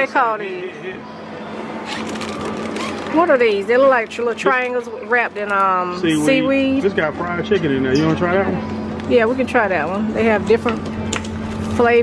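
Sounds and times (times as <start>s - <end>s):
refrigerator hum and hiss: 0.0s - 12.0s
plastic wrap crinkling: 1.9s - 3.7s.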